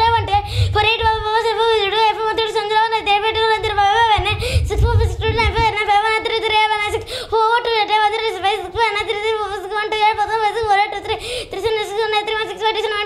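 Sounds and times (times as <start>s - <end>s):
child reciting digits: 0.0s - 13.0s.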